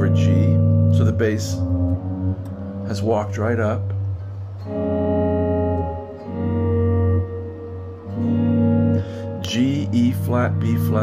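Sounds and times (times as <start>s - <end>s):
clean electric guitar chords: 0.0s - 11.0s
walking bass: 0.0s - 11.0s.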